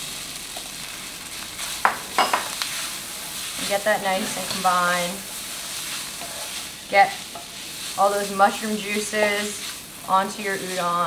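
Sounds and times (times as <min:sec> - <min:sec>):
noodles sizzling in a frying pan: 0:00.0 - 0:11.0
wooden spatula scraping a pan: 0:01.6 - 0:11.0.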